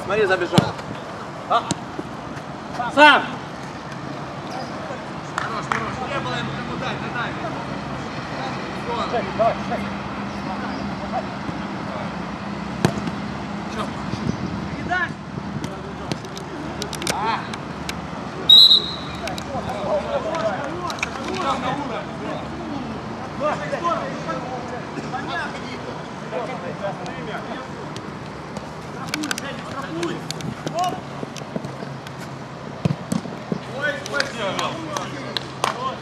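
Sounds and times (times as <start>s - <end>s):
ball being kicked thuds: 12.8s - 13.2s, 32.8s - 33.7s
referee's whistle blast: 18.5s - 19.2s
players shouting: 29.3s - 31.8s.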